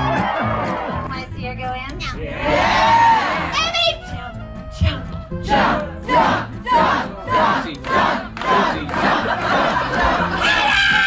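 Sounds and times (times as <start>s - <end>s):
audience chanting in unison: 2.2s - 3.5s, 5.4s - 10.4s.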